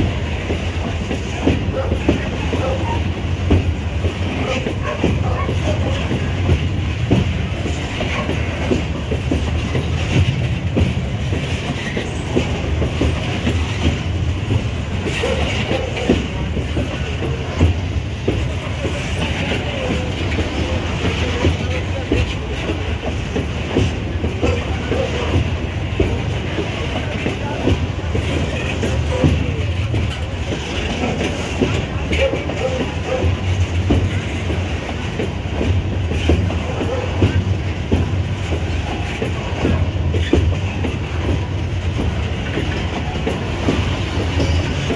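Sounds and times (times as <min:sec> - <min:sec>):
freight train rumble: 0:00.0 - 0:44.9
wheels clattering over rail joints: 0:00.0 - 0:44.9.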